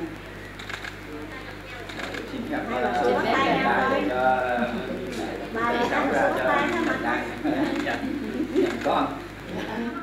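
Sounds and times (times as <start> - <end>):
people talking indistinctly: 0.8 - 9.9.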